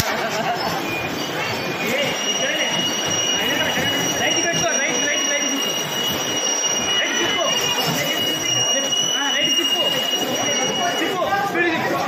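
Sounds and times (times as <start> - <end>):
voices calling out: 0.0 - 12.0
high-pitched whine: 0.1 - 12.0.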